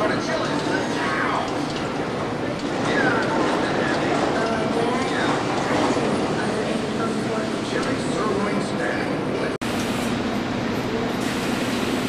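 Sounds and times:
indistinct voices: 0.0s - 9.6s
factory floor din: 0.0s - 12.0s.

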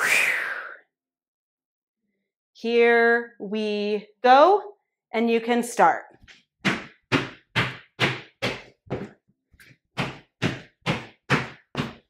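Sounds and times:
feet thudding on floor: 6.2s - 12.0s.

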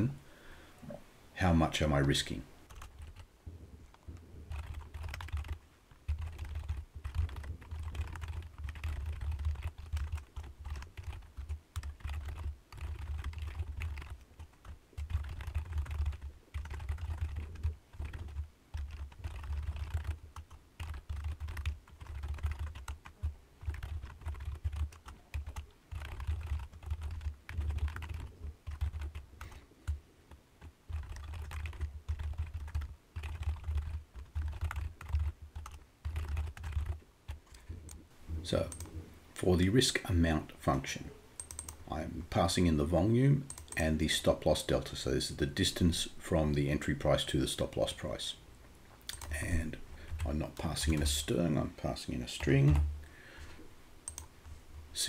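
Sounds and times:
typing on a keyboard: 2.7s - 3.3s, 3.9s - 30.0s, 30.6s - 38.0s, 38.7s - 39.0s, 41.4s - 41.8s, 43.5s - 43.8s, 49.1s - 49.4s, 54.0s - 54.3s.

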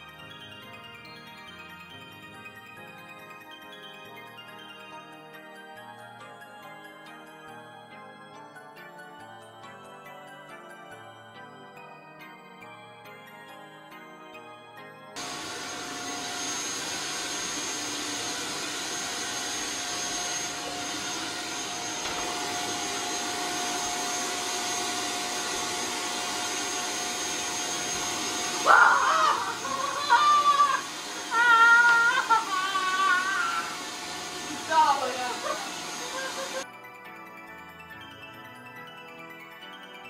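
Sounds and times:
vacuum cleaner running: 15.2s - 36.7s
high wavering vocal cries: 28.6s - 33.8s.

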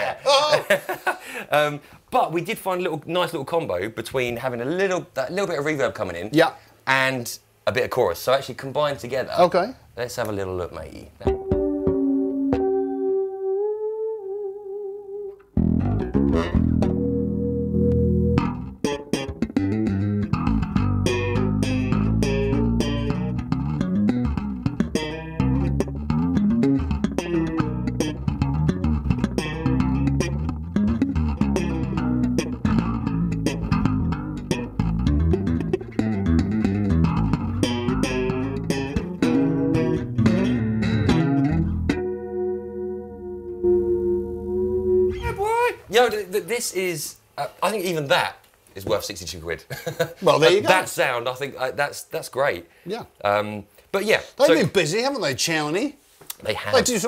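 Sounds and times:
electric bass with chorus: 11.2s - 45.5s.

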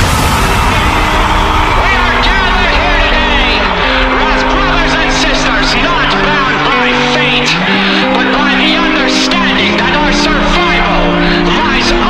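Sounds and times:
distorted low notes: 0.0s - 12.0s
person singing: 0.0s - 12.0s
rock song: 0.0s - 12.0s.

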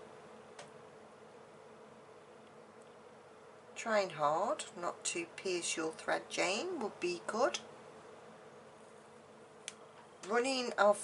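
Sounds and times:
faint background hum: 0.0s - 11.0s
woman speaking: 3.8s - 7.7s, 10.2s - 11.0s
small click: 9.6s - 10.1s.

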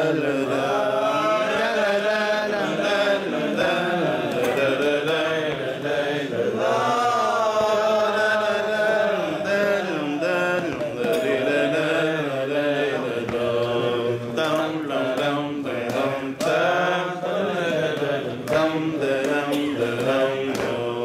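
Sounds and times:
man singing unaccompanied: 0.0s - 21.0s.

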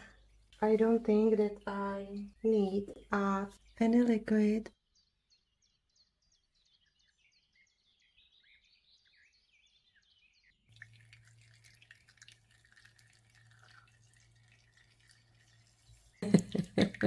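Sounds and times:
small birds chirping: 0.0s - 17.0s
juice dripping and trickling into jug: 10.6s - 17.0s.

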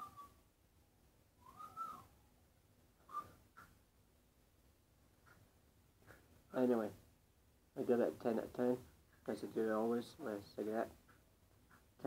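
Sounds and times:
soft whistling: 0.0s - 0.5s, 1.4s - 2.2s, 3.0s - 3.7s.

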